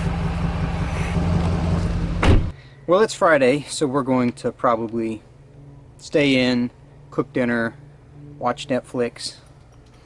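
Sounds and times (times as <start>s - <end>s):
car engine and road hum: 0.0s - 2.6s.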